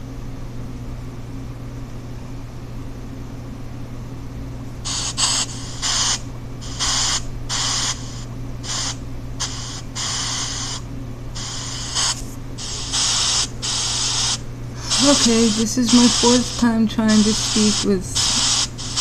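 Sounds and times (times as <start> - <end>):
steady low hum: 0.0 - 19.0
chopped hiss bursts: 4.9 - 10.8, 11.4 - 19.0.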